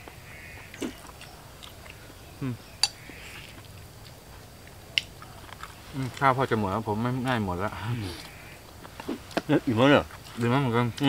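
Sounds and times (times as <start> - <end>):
soft chewing: 0.6 - 6.4.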